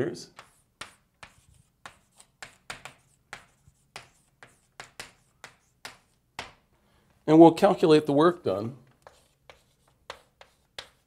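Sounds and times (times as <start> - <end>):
chalk taps and strokes on board: 0.3 - 6.7, 8.9 - 11.0.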